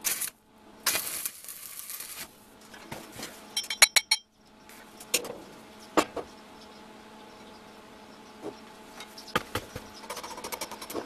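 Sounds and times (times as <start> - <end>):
arc welding crackle: 0.0 - 2.4.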